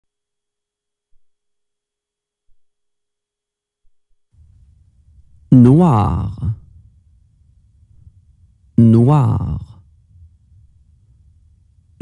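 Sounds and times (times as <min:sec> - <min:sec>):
faint steady electronic tone: 0:00.0 - 0:12.0.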